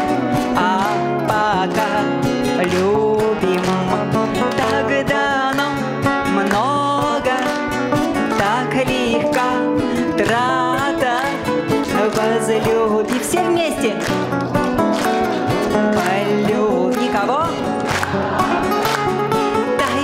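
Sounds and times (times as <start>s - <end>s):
acoustic guitars: 0.0s - 20.0s
audience clapping along: 0.0s - 20.0s
woman singing with vibrato: 0.4s - 14.0s, 15.9s - 20.0s.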